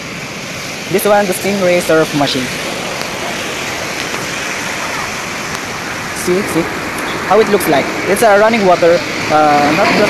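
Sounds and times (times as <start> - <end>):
rushing water: 0.0 - 10.0.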